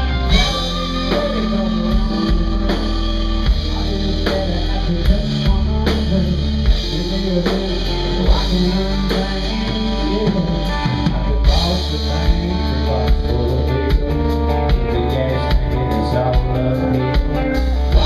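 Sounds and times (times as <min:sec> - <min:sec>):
rock band playing live: 0:00.0 - 0:18.0.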